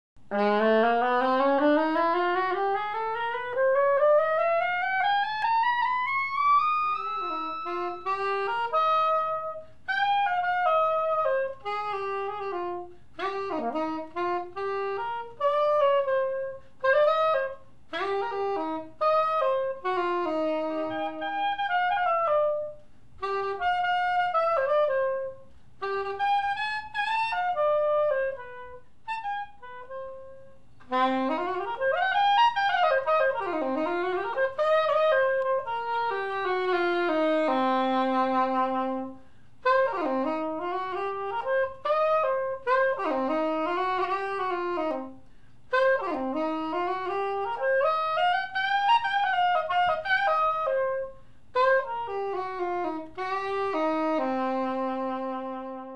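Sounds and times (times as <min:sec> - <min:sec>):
soprano saxophone solo: 0:00.2 - 0:55.9.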